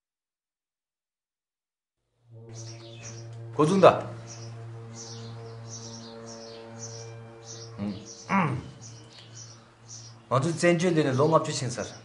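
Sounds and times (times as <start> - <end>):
small birds chirping: 2.4 - 12.0.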